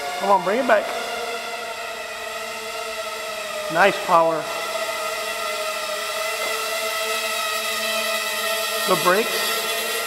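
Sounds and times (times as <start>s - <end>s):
drone motors buzzing: 0.0s - 10.0s.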